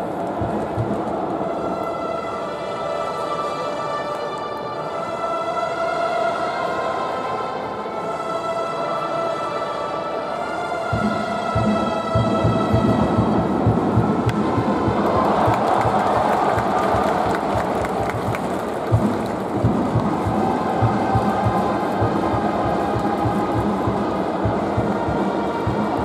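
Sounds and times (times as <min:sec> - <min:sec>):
crowd cheering: 0:00.0 - 0:03.4, 0:10.9 - 0:26.0
drums beating: 0:00.3 - 0:01.3, 0:11.0 - 0:26.0.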